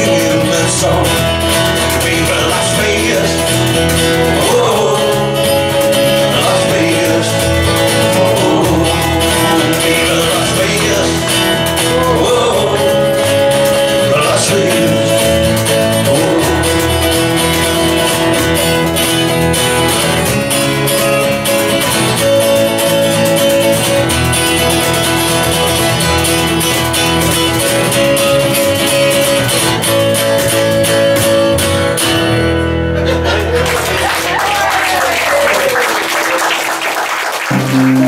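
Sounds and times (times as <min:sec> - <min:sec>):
cajon drumming: 0:00.0 - 0:31.8, 0:37.5 - 0:38.0
acoustic guitar strumming: 0:00.0 - 0:34.4, 0:37.5 - 0:38.0
electric bass: 0:00.0 - 0:34.4, 0:37.5 - 0:38.0.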